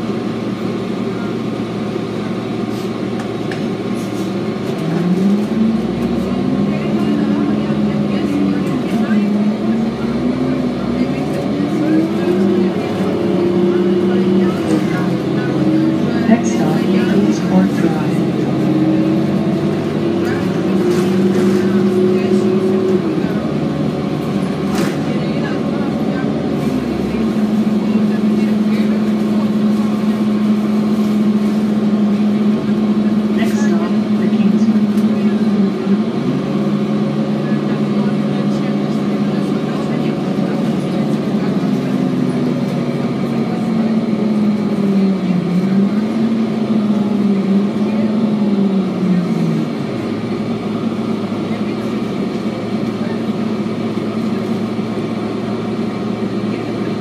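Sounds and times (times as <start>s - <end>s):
bus engine drone: 0.0s - 57.0s.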